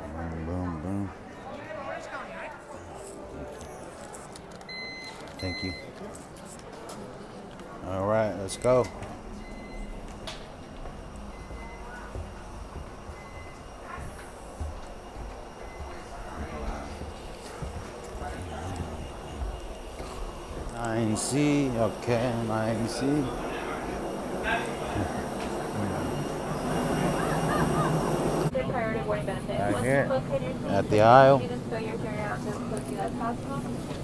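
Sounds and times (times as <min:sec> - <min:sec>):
boarding gate background noise: 0:01.3 - 0:34.0
scanner beep: 0:04.7 - 0:05.9, 0:08.4 - 0:14.0, 0:15.6 - 0:17.1, 0:24.0 - 0:28.5
steady low hum: 0:07.7 - 0:34.0
footsteps on hollow floor: 0:10.0 - 0:20.8.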